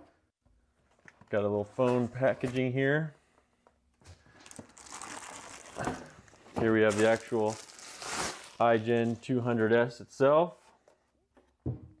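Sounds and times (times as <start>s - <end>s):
plastic bag crinkling: 4.3s - 9.3s.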